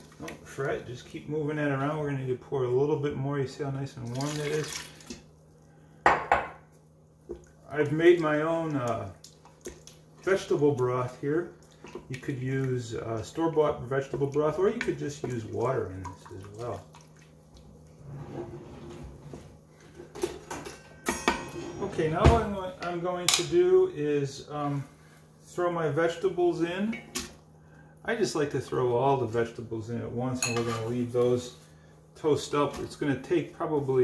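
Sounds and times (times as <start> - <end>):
liquid sloshing: 4.0 - 5.7, 7.2 - 18.2
kitchenware clinking: 6.0 - 6.6, 20.0 - 23.6, 30.4 - 31.0.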